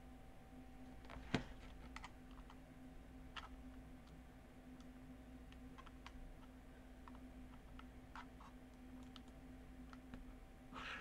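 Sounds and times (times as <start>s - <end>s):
faint steady hum: 0.0s - 11.0s
keyboard and mouse clicks: 5.5s - 10.1s.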